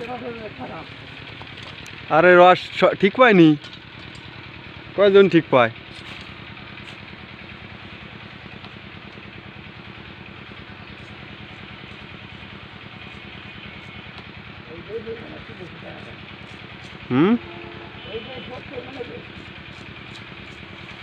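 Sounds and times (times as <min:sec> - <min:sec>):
engine running steadily: 0:00.0 - 0:21.0.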